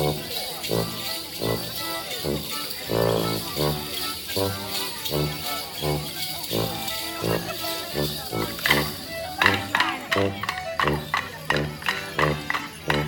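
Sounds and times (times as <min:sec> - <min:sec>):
brass bass notes: 0:00.0 - 0:13.0
small band playing dance tune: 0:00.0 - 0:13.0
dance sticks clacking: 0:09.4 - 0:13.0.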